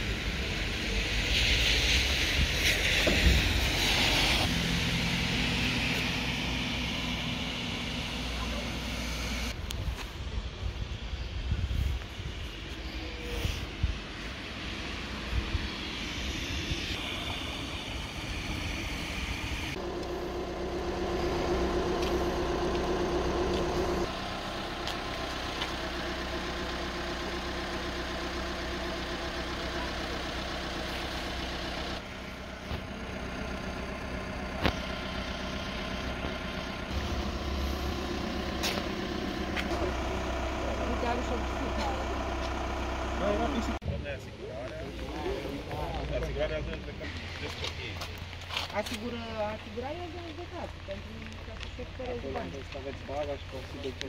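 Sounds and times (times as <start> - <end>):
vehicle engines idling: 0.0 - 54.0.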